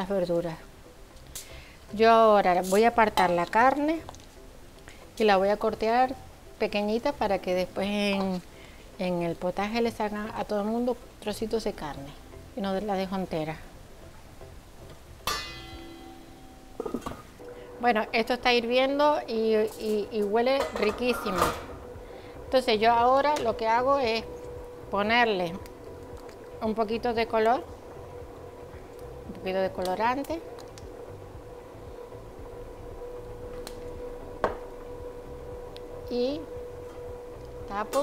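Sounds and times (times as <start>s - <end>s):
kitchen background hum: 0.0s - 13.8s, 14.8s - 38.0s
metal pot ringing after knock: 15.3s - 17.3s.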